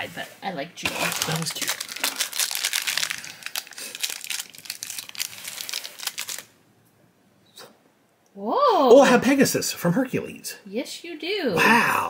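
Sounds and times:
plastic packet crinkling: 0:00.9 - 0:06.5.

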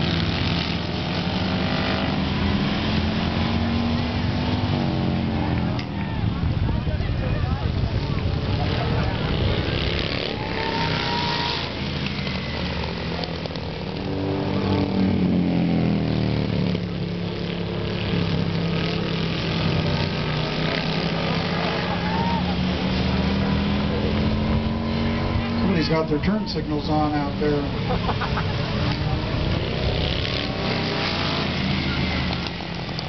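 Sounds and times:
motorcycle engines racing: 0:00.0 - 0:33.0.

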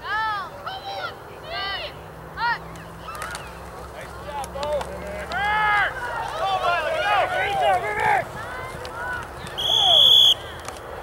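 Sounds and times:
spectators shouting excitedly: 0:05.0 - 0:10.5
referee whistle blown: 0:09.6 - 0:10.5.

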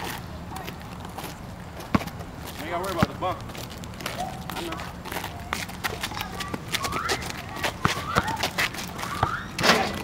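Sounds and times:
players calling out: 0:04.0 - 0:10.0.

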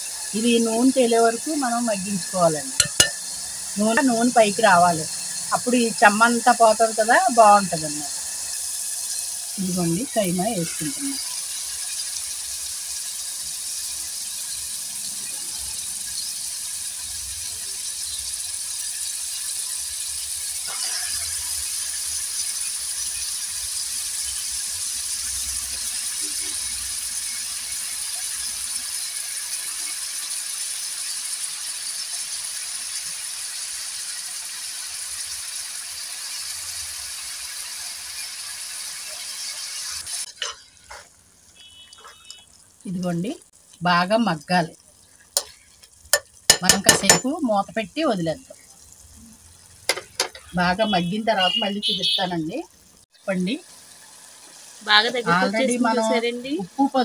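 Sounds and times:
meat sizzling in oil: 0:00.0 - 0:57.0.

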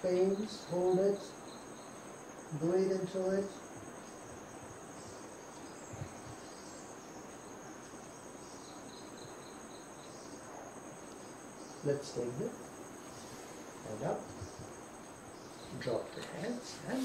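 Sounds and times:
insects trilling: 0:00.0 - 0:17.0.

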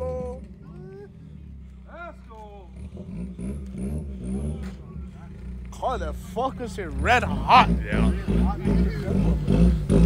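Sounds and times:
voices calling out: 0:04.5 - 0:09.9.

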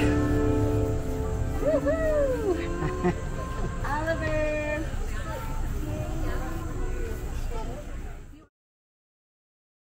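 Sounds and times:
background music: 0:00.0 - 0:05.1.

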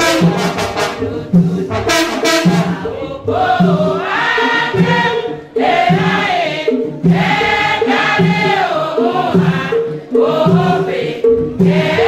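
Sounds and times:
women singing a hymn: 0:00.0 - 0:12.0.

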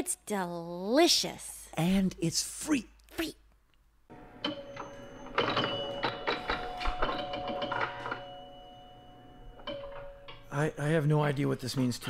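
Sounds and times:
pinball mechanical clicks: 0:04.1 - 0:12.0
steady held tones: 0:04.1 - 0:12.0.

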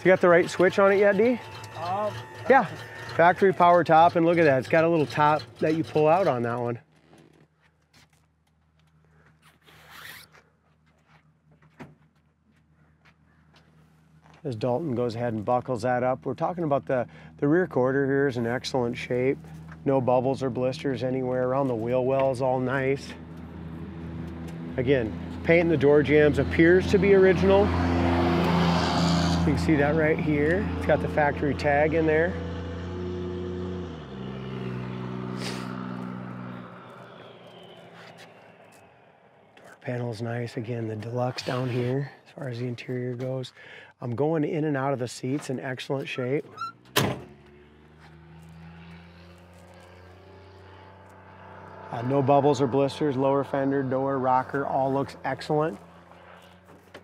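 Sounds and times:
car engine idling: 0:00.0 - 0:07.4.

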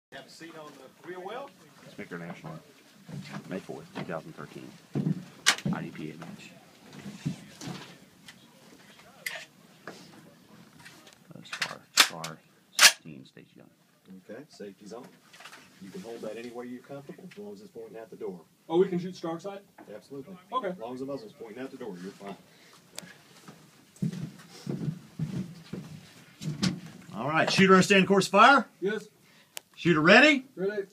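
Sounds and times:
dull thumps of footsteps on van floor: 0:04.9 - 0:06.5, 0:24.0 - 0:27.0.

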